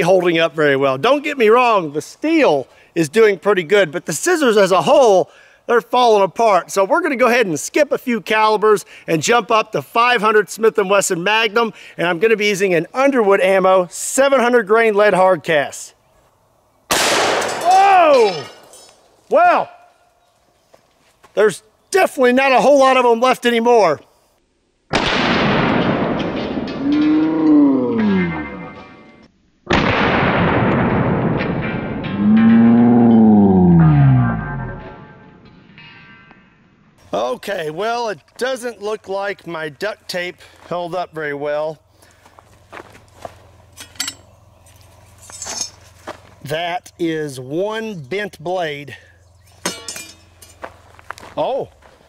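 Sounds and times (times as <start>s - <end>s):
slowed-down revolver shots: 16.9s - 17.6s, 24.9s - 26.8s
light metal clinks: 18.1s - 19.1s, 43.8s - 44.3s, 45.1s - 46.0s, 49.4s - 50.8s
metallic hit with ring: 28.0s - 29.2s, 49.5s - 50.7s
low droning tone: 31.6s - 37.0s.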